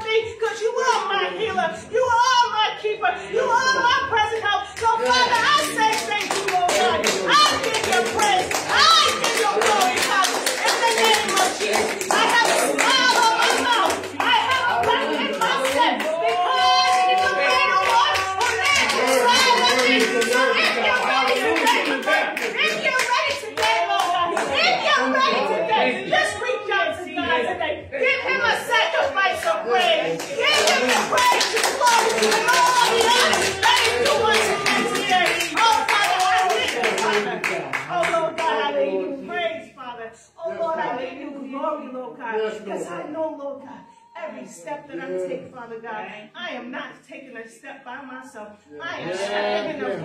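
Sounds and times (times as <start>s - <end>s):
hands clapping in rhythm: 4.8s - 24.9s, 29.0s - 38.6s.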